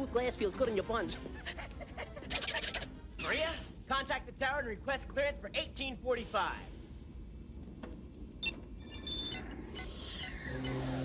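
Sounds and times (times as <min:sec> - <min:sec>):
low hum: 0:02.8 - 0:11.0.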